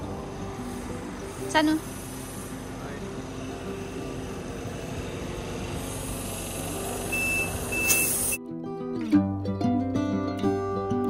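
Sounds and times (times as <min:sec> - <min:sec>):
tyre inflator air hiss: 0:00.0 - 0:08.4
background music: 0:00.0 - 0:11.0
short high beeps: 0:07.1 - 0:08.4
plucked-string music: 0:08.4 - 0:11.0.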